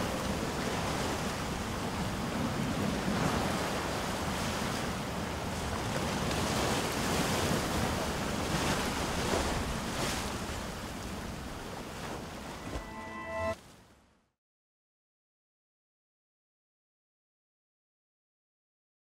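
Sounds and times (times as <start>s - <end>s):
ocean surf breaking on rocks: 0.0s - 13.5s.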